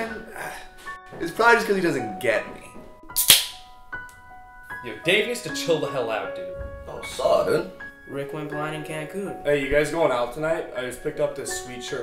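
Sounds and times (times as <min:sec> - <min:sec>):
background music with held notes: 0:00.0 - 0:12.0
sudden sharp crack: 0:03.2 - 0:03.7.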